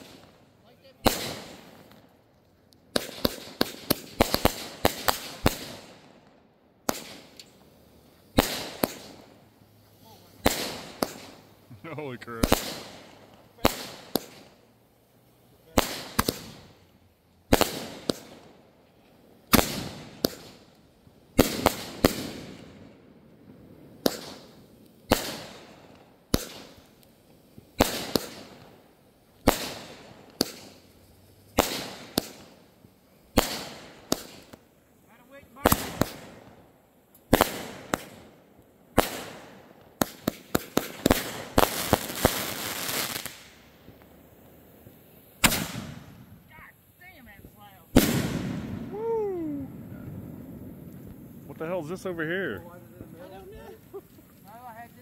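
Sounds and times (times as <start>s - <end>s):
firework bangs with echo: 0.0s - 2.0s, 2.9s - 6.1s, 6.8s - 7.4s, 8.3s - 9.3s, 10.4s - 14.6s, 15.7s - 16.8s, 17.5s - 18.5s, 19.5s - 20.6s, 21.3s - 26.9s, 27.7s - 30.8s, 31.5s - 32.6s, 33.3s - 34.6s, 35.2s - 36.6s, 37.3s - 43.6s, 45.4s - 46.3s, 47.9s - 51.6s
firework crackling: 0.0s - 55.0s.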